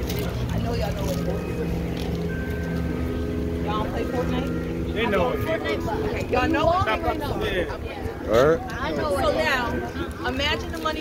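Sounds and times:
faint voices: 0:00.0 - 0:11.0
vehicle engine idling: 0:00.0 - 0:11.0.

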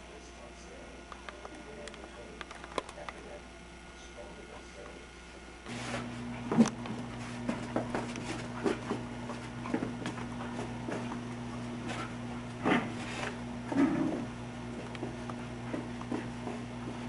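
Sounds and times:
low electrical hum: 0:00.0 - 0:17.0
paws and ball knocking on carpet: 0:06.5 - 0:13.0, 0:13.9 - 0:17.0.

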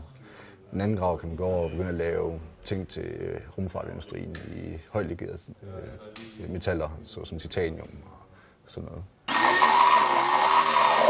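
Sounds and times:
electric power drill running: 0:09.3 - 0:11.0.

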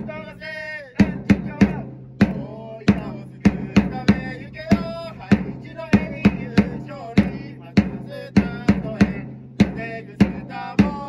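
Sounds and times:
drum beating cheer rhythm: 0:00.0 - 0:11.0.

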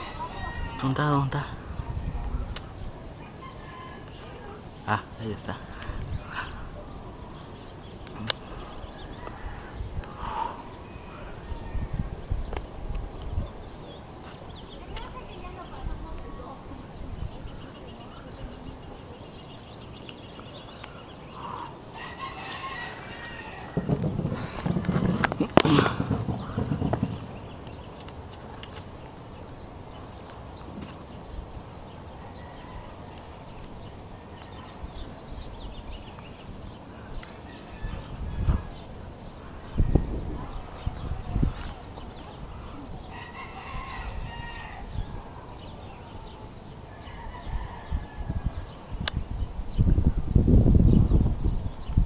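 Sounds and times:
rooster crowing: 0:00.0 - 0:01.0, 0:03.4 - 0:04.4, 0:22.0 - 0:23.9, 0:32.2 - 0:33.2, 0:37.4 - 0:38.7, 0:43.0 - 0:45.2, 0:46.9 - 0:48.7
low rumbling noise: 0:00.0 - 0:52.0.

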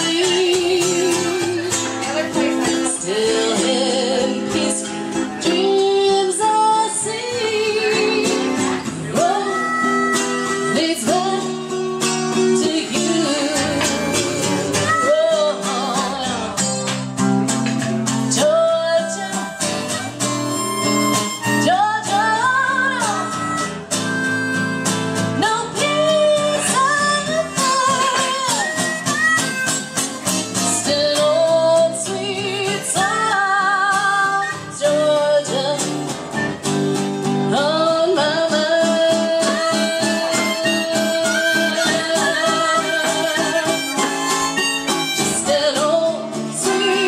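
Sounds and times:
harmonica: 0:00.0 - 0:03.1, 0:07.9 - 0:16.1, 0:19.0 - 0:31.5, 0:36.1 - 0:37.0, 0:39.2 - 0:47.0
woman singing: 0:00.0 - 0:17.1, 0:18.1 - 0:47.0
acoustic guitar: 0:00.0 - 0:47.0.

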